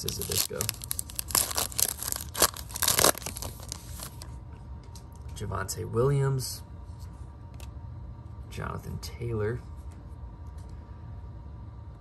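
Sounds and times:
plastic wrapper tearing and crinkling: 0:00.0 - 0:04.2.

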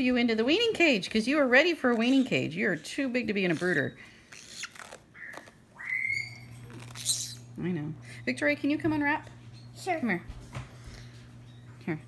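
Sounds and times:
bird chick squeaking: 0:03.5 - 0:07.5.

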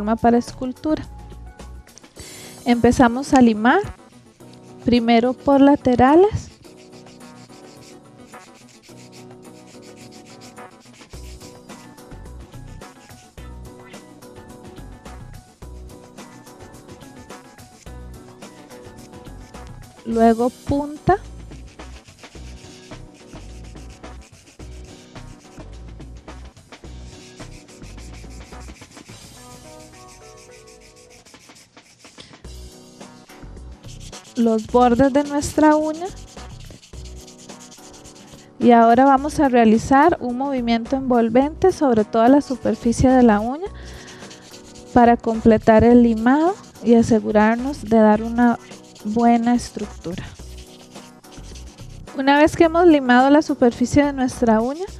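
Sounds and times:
nail file rubbing on nail: 0:02.1 - 0:39.8, 0:42.4 - 0:54.9.

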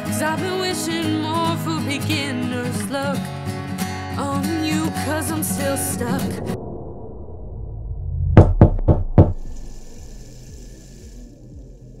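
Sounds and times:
loud knocks: 0:08.4 - 0:09.5.

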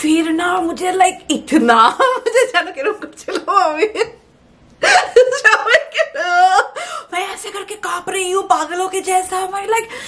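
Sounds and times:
woman laughing and talking: 0:01.5 - 0:04.2, 0:04.8 - 0:08.4.

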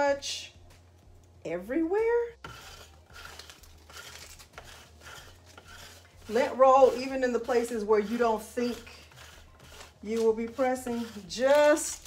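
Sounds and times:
lint roller rolling on fabric: 0:02.4 - 0:12.0.

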